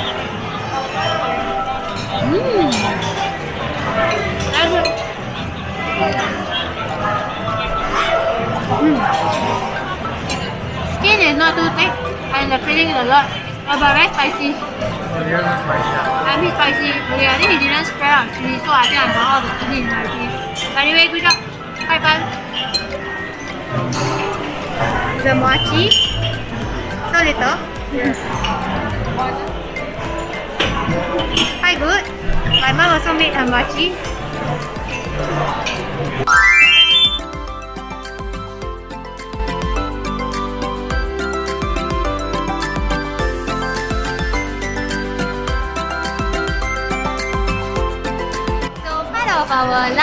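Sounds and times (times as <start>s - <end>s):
voices chattering: 0.0s - 29.0s
cutlery and crockery clinking: 0.8s - 5.4s, 18.4s - 25.0s, 30.1s - 31.6s.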